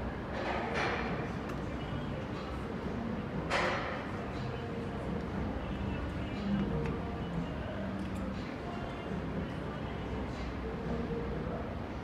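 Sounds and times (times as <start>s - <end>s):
steady background hum: 0.0s - 12.0s.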